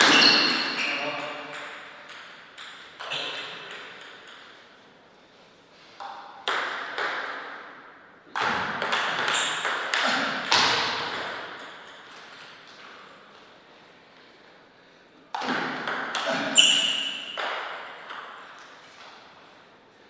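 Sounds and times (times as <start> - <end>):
table tennis ball bouncing: 0.0 - 4.8, 6.0 - 12.8, 15.3 - 18.7.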